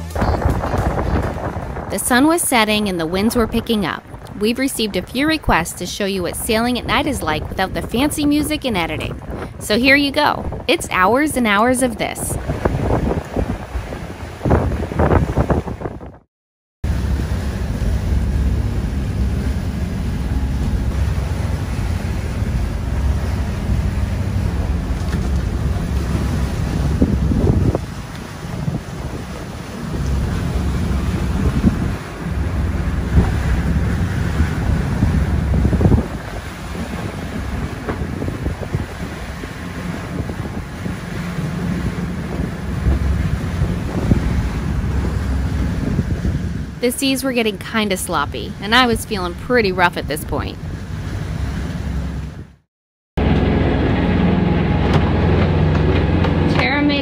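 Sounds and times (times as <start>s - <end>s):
waves rushing: 0.0s - 16.1s, 16.8s - 52.6s, 53.2s - 57.0s
wind buffeting microphone: 0.0s - 16.2s, 16.9s - 52.6s.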